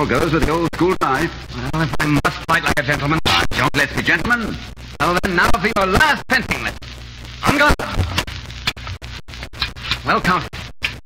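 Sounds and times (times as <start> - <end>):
old recording hiss and hum: 0.0 - 11.0.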